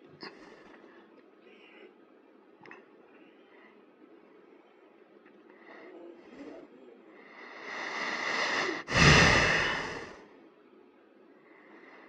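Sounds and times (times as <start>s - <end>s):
person breathing in: 7.5s - 10.2s.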